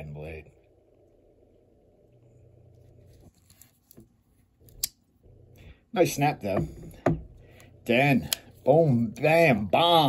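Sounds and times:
light clicks and handling rustle: 2.7s - 4.9s.

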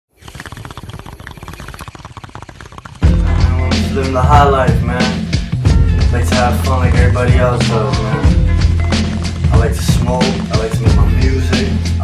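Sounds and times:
crackles and pops: 0.1s - 3.4s, 8.7s - 10.9s.

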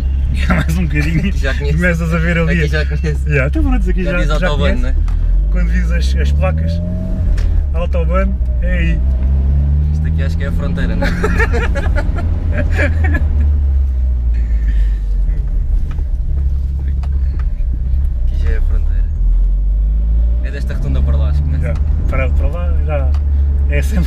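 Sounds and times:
car engine and road noise: 0.0s - 24.0s
people laughing: 0.3s - 1.9s, 10.8s - 13.6s.

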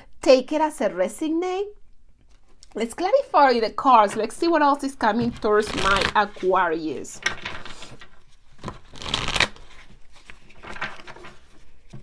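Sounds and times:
cards being shuffled: 7.2s - 12.0s.

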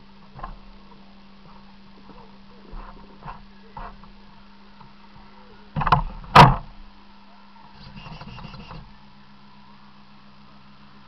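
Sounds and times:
faint steady hum: 0.0s - 11.0s
loud sharp knocks: 5.8s - 6.7s.

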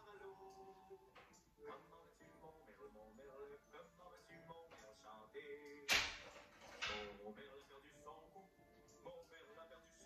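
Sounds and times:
television music: 0.0s - 10.0s
voice on television: 0.0s - 10.0s.

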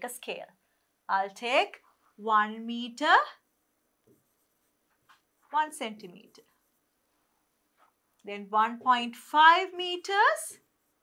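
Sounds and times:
woman speaking: 0.0s - 3.4s, 5.5s - 6.5s, 8.2s - 10.7s.

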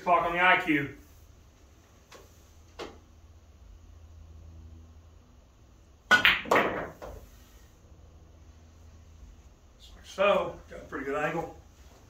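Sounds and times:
billiard balls clacking: 6.1s - 7.2s.

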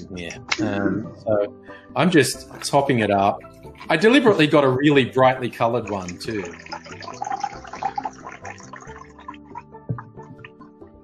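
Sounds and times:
quiet background music: 0.0s - 11.0s
drink fizzing in a glass: 5.3s - 10.6s.

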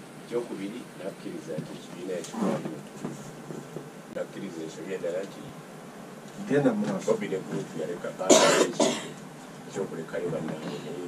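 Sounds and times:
man talking: 0.3s - 3.1s, 4.1s - 5.6s, 6.4s - 9.1s, 9.7s - 11.0s.

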